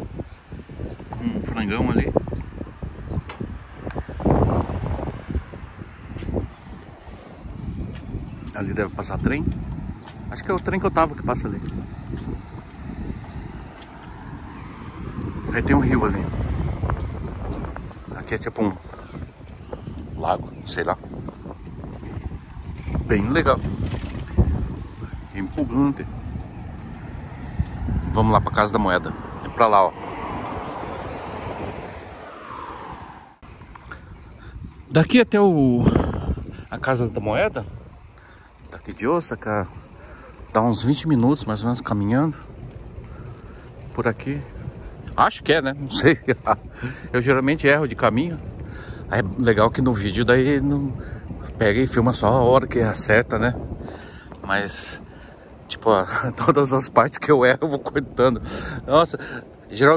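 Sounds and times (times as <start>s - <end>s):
rushing road traffic: 0.0s - 59.9s
wind buffeting microphone: 0.0s - 59.9s
vehicle passing by: 22.6s - 33.8s.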